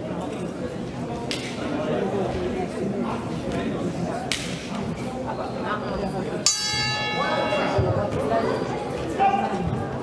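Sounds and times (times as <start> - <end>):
indistinct voices talking: 6.4 - 10.0.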